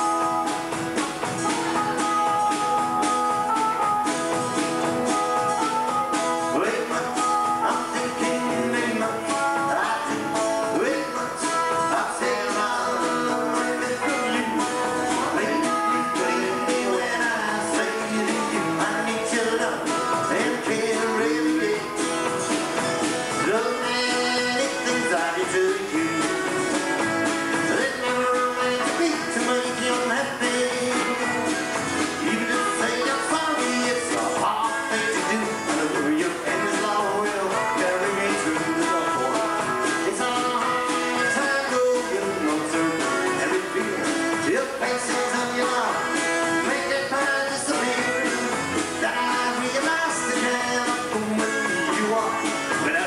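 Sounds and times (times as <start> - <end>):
person singing: 0.0 - 22.3, 23.2 - 53.0
drums: 0.0 - 53.0
electric guitar: 0.0 - 53.0
strummed acoustic guitar: 0.0 - 53.0.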